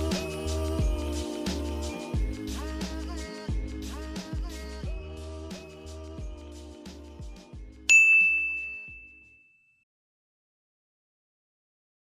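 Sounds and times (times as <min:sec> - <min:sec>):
background music: 0:00.0 - 0:08.9
high bell-like ding: 0:07.9 - 0:09.8.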